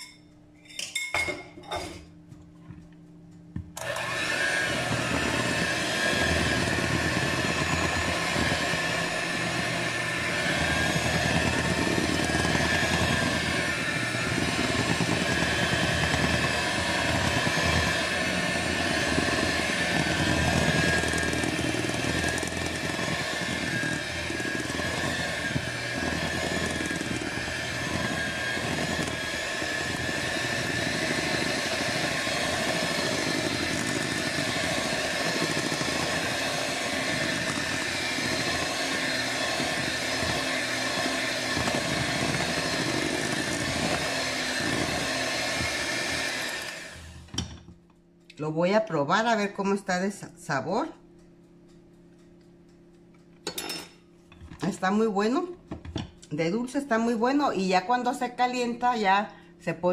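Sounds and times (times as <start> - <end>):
electric hand mixer running: 3.8 - 47.5.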